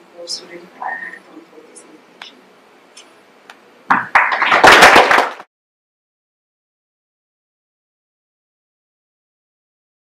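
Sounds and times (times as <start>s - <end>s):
audience applauding: 4.1s - 5.5s.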